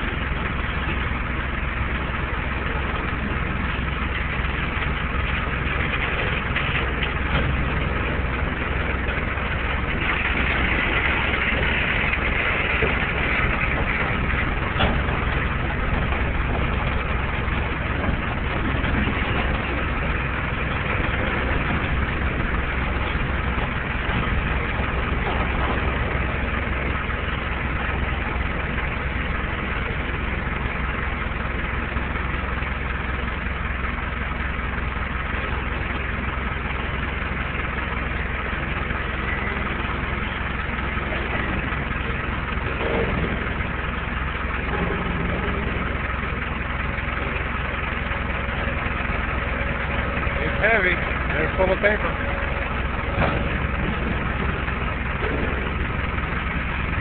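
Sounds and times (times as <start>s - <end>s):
forklift engine running: 0.0s - 57.0s.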